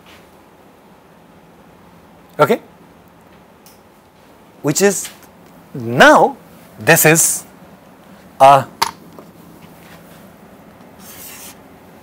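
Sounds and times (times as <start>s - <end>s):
chalk scraping on chalkboard: 11.0s - 11.6s.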